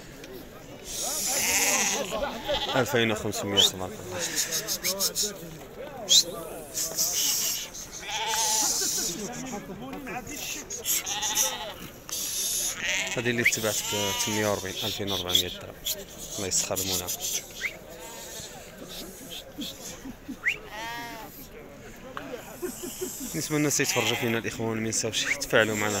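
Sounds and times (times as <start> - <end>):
chatter of many voices: 0.0 - 26.0
crowd murmuring: 0.0 - 26.0
sheep bleating: 1.2 - 3.0, 7.3 - 8.8, 10.8 - 11.9, 12.6 - 14.8, 20.6 - 21.3, 23.8 - 24.5.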